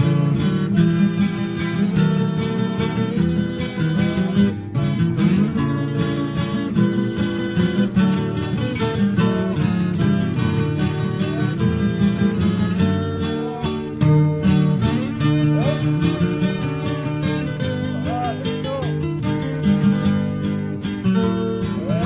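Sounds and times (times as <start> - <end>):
acoustic guitar music: 0.0 - 22.0.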